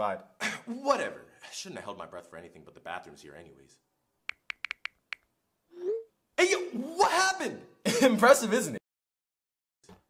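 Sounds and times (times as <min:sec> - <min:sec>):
smartphone keyboard taps: 0:04.3 - 0:05.3.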